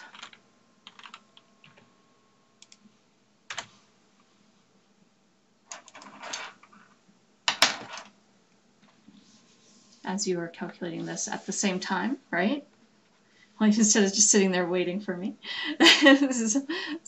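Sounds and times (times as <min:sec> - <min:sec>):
keyboard keys tapping: 0:00.0 - 0:01.8.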